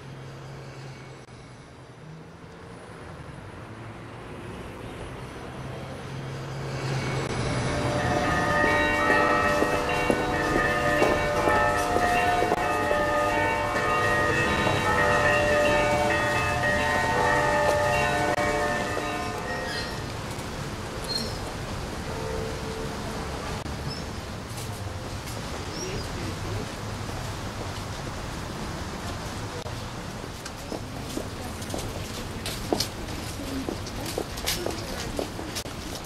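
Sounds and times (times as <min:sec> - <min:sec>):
church bells ringing: 0:07.4 - 0:20.2.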